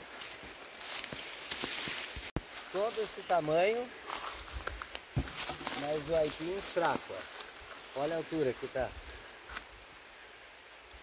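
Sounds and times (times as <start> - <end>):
outdoor rustling: 0.0 - 11.0
man speaking: 2.7 - 3.9, 5.7 - 7.3, 8.0 - 9.0.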